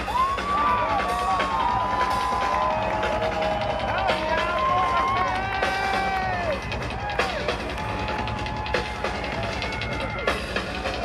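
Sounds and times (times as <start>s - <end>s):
concert crowd cheering: 0.0s - 11.0s.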